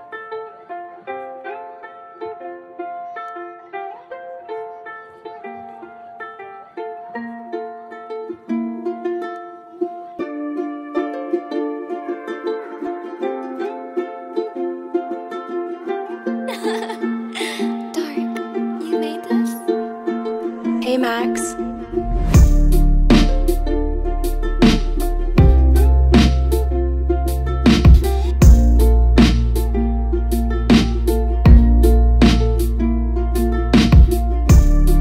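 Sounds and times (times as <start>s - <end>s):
plucked ukulele melody: 0.0s - 35.0s.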